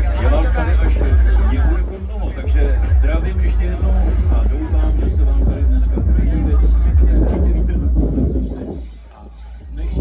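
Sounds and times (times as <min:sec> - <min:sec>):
trance music with heavy bass: 0:00.0 - 0:10.0.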